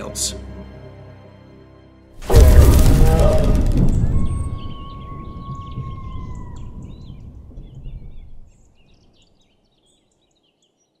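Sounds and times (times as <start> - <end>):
low rumble: 2.2 - 8.6
long whistling tone: 2.4 - 6.9.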